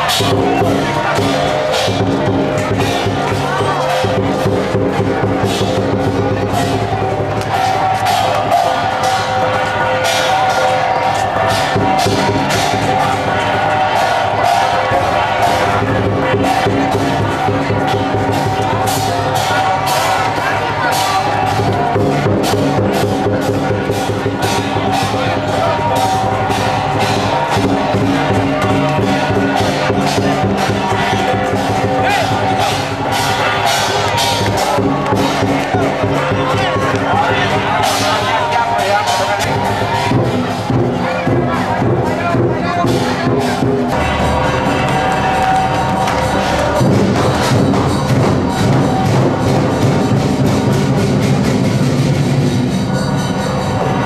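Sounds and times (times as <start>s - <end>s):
crowd voices: 0.0s - 54.0s
processional percussion music: 0.0s - 54.0s.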